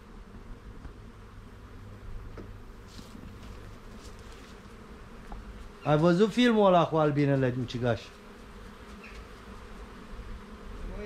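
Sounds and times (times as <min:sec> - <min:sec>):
bees buzzing: 0:00.0 - 0:11.0.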